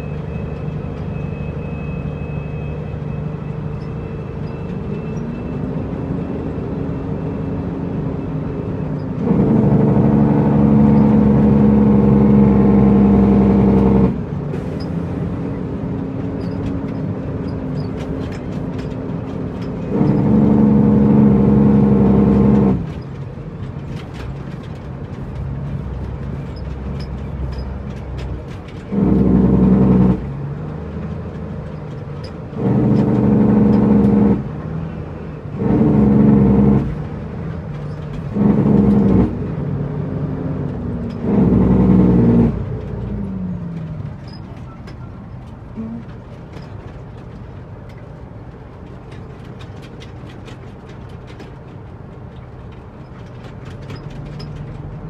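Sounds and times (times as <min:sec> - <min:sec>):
diesel engine running: 0:00.0 - 0:55.0
truck air horn blasts: 0:38.3 - 0:39.3.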